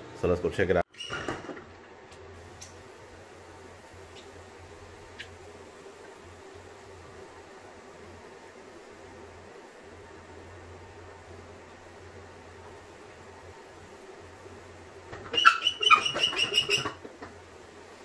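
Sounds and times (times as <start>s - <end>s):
faint steady hum: 1.6s - 18.0s
pump sprayer squeaking: 15.2s - 17.0s.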